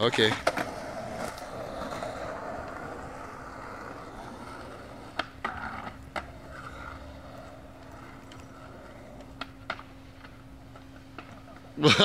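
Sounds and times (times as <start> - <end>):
skateboards rolling on asphalt: 0.0 - 12.0.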